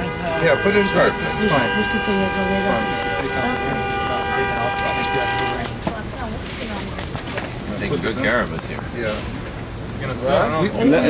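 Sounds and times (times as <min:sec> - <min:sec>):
vehicle horn long note: 0:00.0 - 0:05.8
street chatter: 0:00.0 - 0:11.0.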